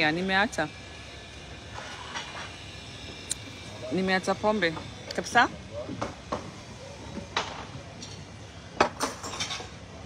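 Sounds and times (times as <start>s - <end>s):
glassware and dishes clinking: 8.8s - 9.8s.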